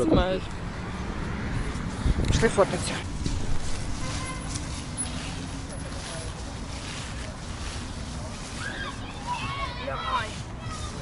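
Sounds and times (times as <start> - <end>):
wind buffeting microphone: 0.0 - 5.8.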